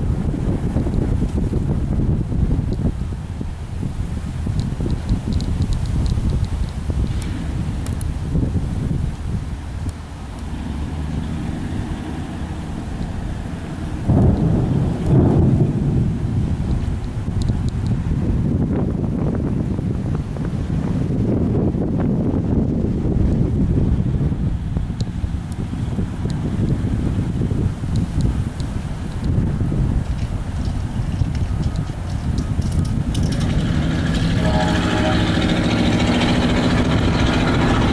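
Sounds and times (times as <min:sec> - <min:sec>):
wind gusting on microphone: 0:00.0 - 0:37.9.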